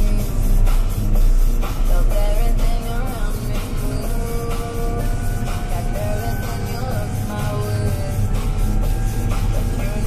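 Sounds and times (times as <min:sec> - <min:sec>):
music: 0:00.0 - 0:10.0
tractor engine drone: 0:00.0 - 0:10.0.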